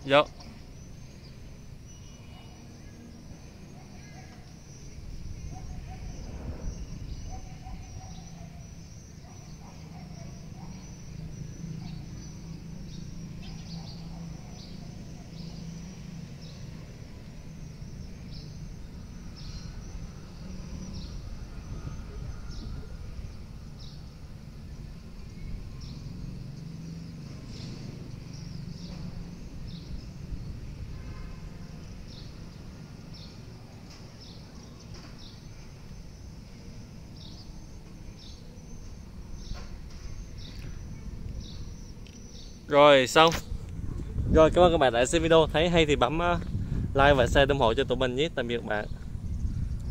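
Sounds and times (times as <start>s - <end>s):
birds chirping: 0.0s - 49.9s.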